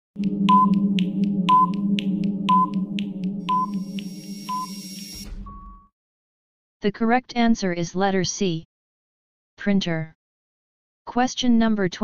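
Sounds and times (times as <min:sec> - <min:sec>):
fast ticking timer: 0:00.2 - 0:05.2
background music: 0:00.2 - 0:05.9
long final beep: 0:00.2 - 0:05.9
short beeps: 0:00.2 - 0:05.9.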